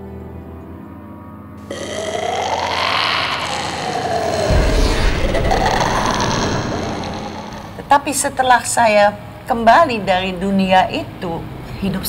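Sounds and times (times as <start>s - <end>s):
faint low drone: 1.7s - 8.4s
rushing growling swell: 1.7s - 8.5s
deep rumble: 2.0s - 8.6s.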